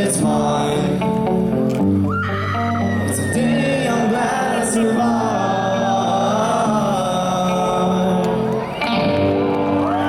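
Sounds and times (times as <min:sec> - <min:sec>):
live rock band music: 0:00.0 - 0:05.1, 0:07.6 - 0:10.0.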